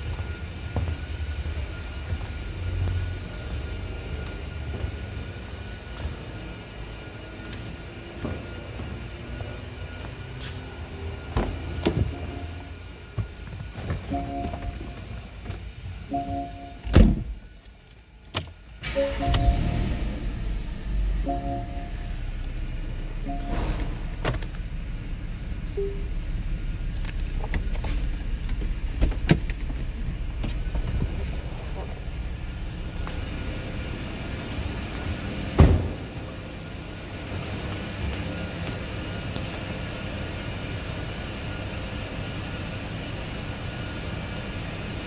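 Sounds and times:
car engine idling: 18.7s - 45.0s
short electronic chimes: 18.8s - 20.6s, 21.2s - 22.4s, 23.2s - 24.2s.

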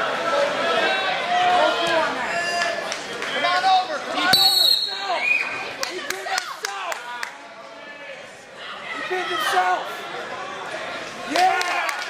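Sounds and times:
shrill whistle: 4.3s - 5.6s.

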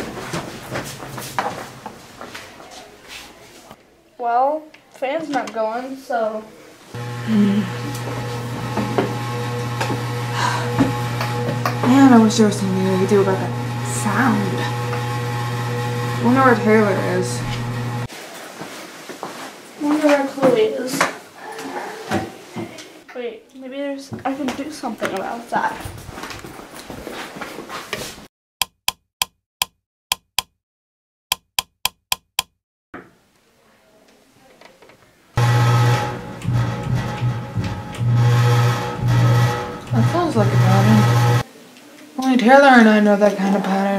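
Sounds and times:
background noise: 0.0s - 7.0s, 18.1s - 28.1s, 33.0s - 35.4s, 41.4s - 43.9s
low electronic hum: 7.0s - 18.1s, 35.4s - 41.4s.

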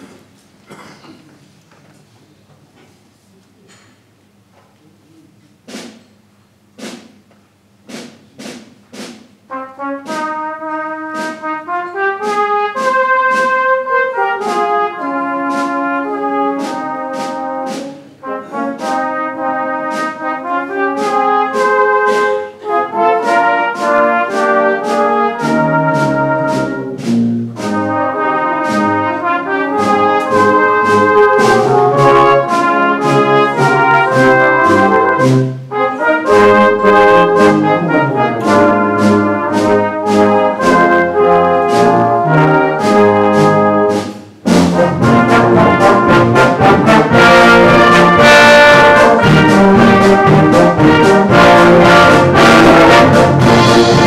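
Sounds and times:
sharp percussion strokes: 5.7s - 54.0s
brass band playing: 7.9s - 54.0s.

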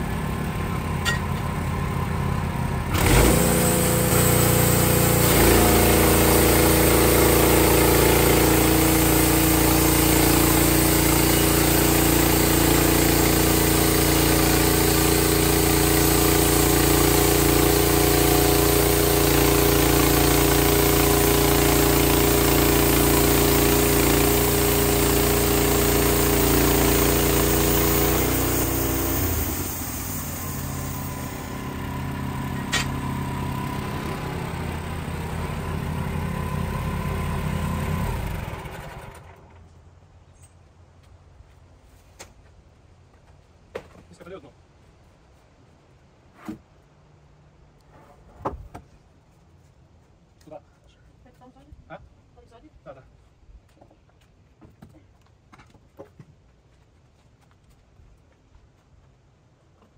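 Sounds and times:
band sawmill cutting log: 0.0s - 39.4s
engine running: 0.0s - 40.6s.

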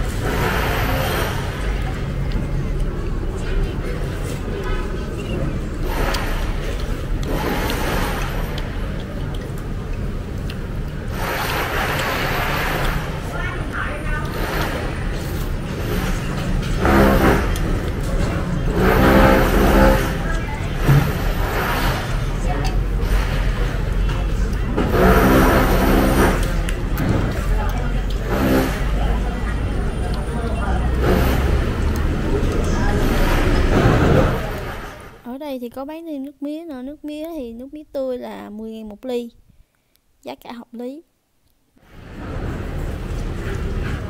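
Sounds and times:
restaurant background rumble: 0.0s - 39.4s, 41.8s - 44.0s
motor revving loudly: 15.8s - 17.8s, 18.7s - 20.2s, 24.8s - 26.7s, 28.2s - 29.2s, 30.9s - 35.0s.

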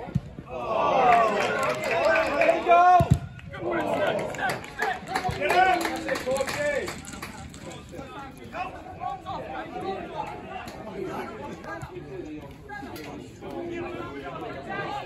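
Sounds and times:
chatter of several voices: 0.5s - 15.0s.

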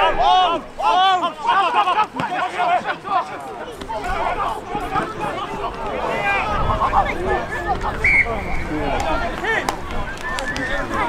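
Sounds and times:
men calling out: 0.0s - 7.5s
crowd chatter: 0.0s - 11.0s.

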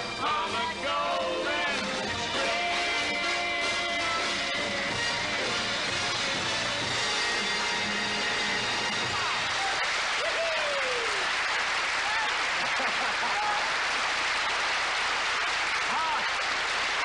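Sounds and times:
people cheering: 0.8s - 5.6s, 8.9s - 17.0s
audience applauding: 2.3s - 17.0s.

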